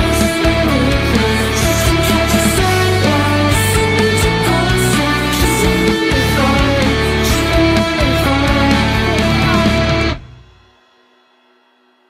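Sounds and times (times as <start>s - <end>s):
electric guitar chord ringing: 0.0s - 10.8s
rock band final chord: 0.0s - 10.8s.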